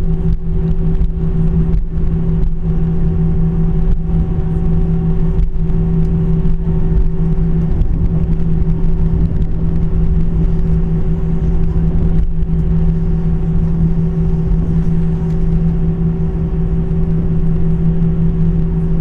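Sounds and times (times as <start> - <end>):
jet engines humming: 0.0 - 19.0
low rumble: 0.0 - 19.0.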